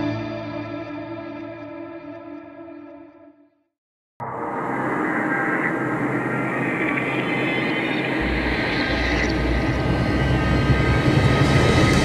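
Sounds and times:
jet engine and air rushing: 0:04.2 - 0:12.0
deep rumble: 0:04.6 - 0:12.0.

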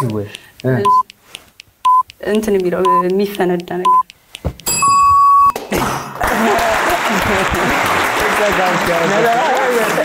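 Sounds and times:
steady electronic tone: 0:03.8 - 0:05.6
studio applause: 0:06.2 - 0:10.0.

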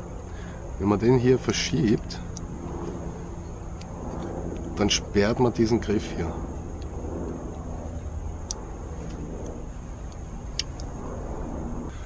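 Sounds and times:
distant traffic rumble: 0:00.0 - 0:12.0.

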